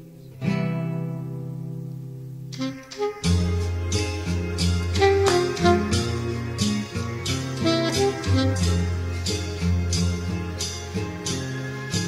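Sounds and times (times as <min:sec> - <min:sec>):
acoustic guitar chord strummed: 0:00.3 - 0:12.0.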